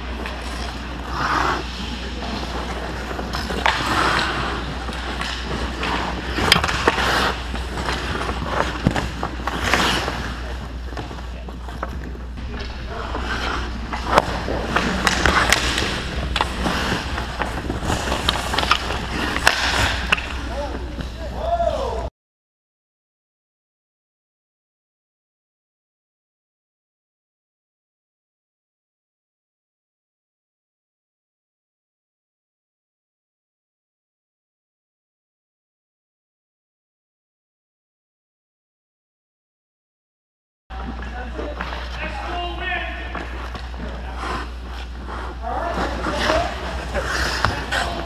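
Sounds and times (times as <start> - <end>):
steady low hum: 0.0 - 21.4
hockey sticks and puck clacking: 0.0 - 22.0, 40.7 - 48.0
skates scraping on ice: 0.0 - 22.0, 40.7 - 48.0.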